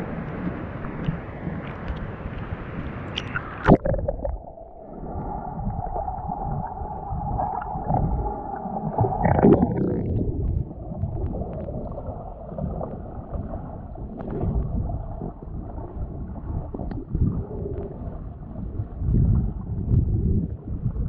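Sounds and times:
underwater rumble and gurgle: 0.0s - 21.0s
faint clicks: 0.3s - 4.4s.

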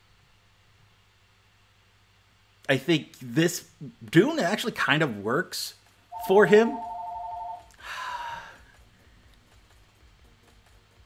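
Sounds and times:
telephone ringing: 6.2s - 7.7s
breathy exhale: 7.8s - 8.7s.

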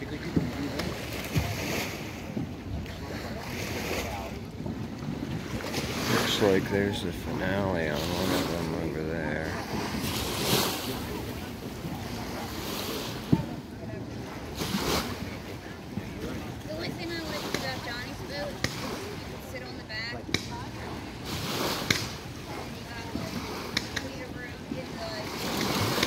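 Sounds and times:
water noise: 0.0s - 26.0s
wind on microphone: 0.0s - 26.0s
distant fireworks pops: 2.3s - 2.9s, 13.2s - 13.7s.

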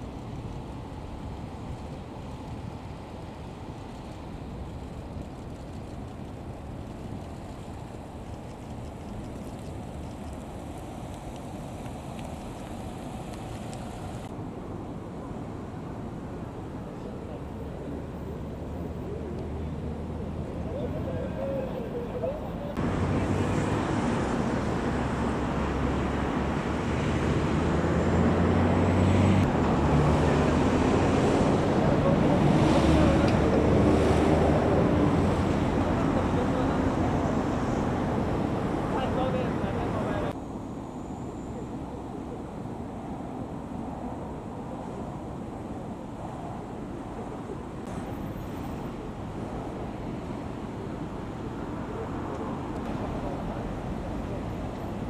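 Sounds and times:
car passing with low engine hum: 7.4s - 55.0s
cars rolling past: 19.0s - 40.4s.

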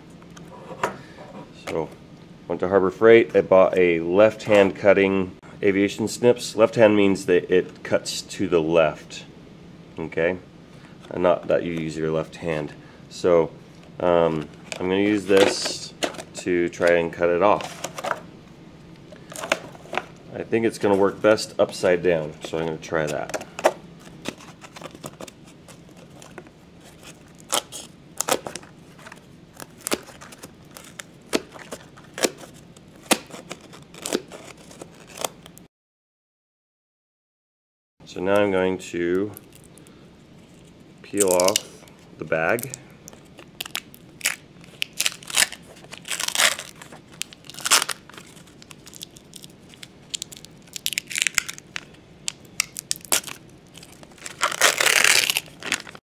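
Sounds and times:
plastic bag crinkling and tearing: 23.1s - 35.6s, 41.2s - 41.8s, 42.5s - 56.0s.

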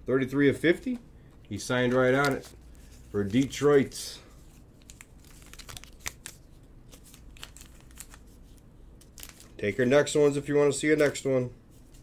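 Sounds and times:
trading cards clicking and rustling: 0.9s - 3.9s, 4.8s - 8.3s, 9.0s - 9.6s, 10.2s - 11.4s.

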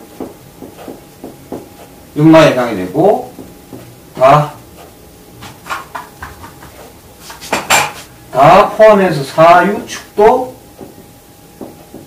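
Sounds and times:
eraser knocking on whiteboard: 0.0s - 1.9s, 3.2s - 3.9s, 4.8s - 8.1s, 11.6s - 12.0s
eraser scrubbing whiteboard: 4.8s - 8.1s.

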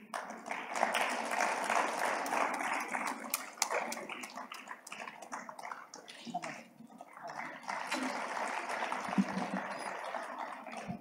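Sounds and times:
audience applauding: 0.0s - 11.0s.

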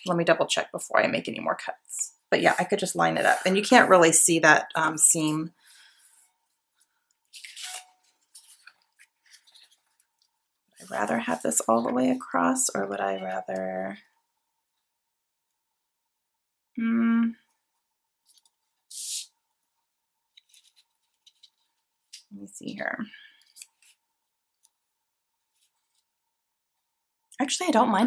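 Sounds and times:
paper rustling and sliding: 6.8s - 10.2s, 20.4s - 21.9s.

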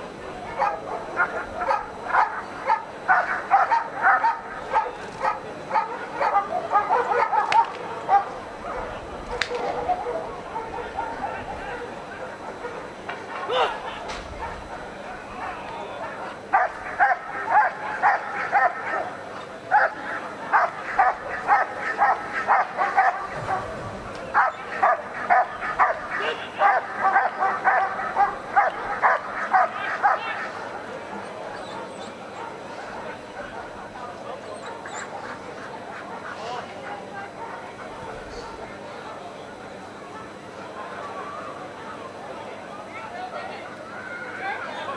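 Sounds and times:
dog barking: 0.5s - 14.8s, 15.4s - 30.7s, 31.5s - 33.9s, 34.6s - 38.7s.

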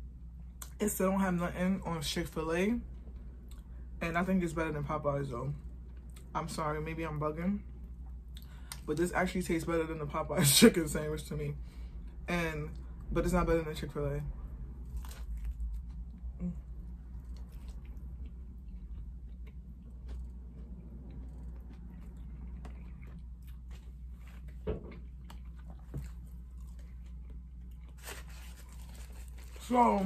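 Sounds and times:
person chewing crispy food: 14.8s - 30.0s
faint crunching: 14.9s - 30.0s.

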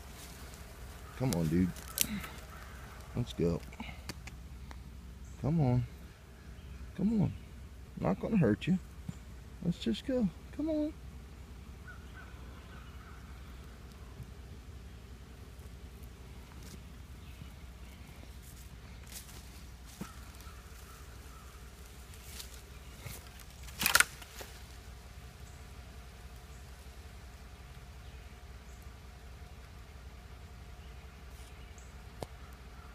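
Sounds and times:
steady low hum: 0.0s - 32.9s.

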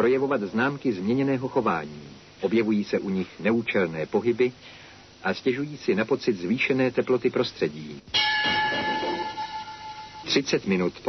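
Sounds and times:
steady ringing tone: 8.1s - 10.8s.

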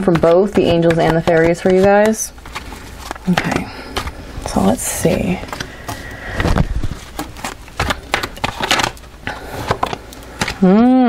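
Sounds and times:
cards being shuffled: 0.0s - 10.6s.

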